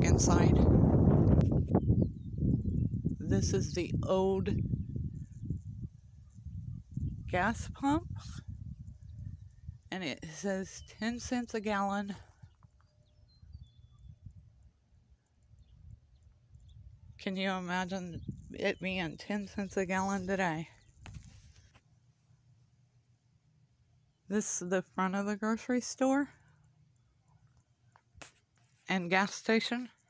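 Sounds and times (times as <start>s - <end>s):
wind buffeting microphone: 0.0s - 9.9s, 12.4s - 14.8s, 15.5s - 21.5s.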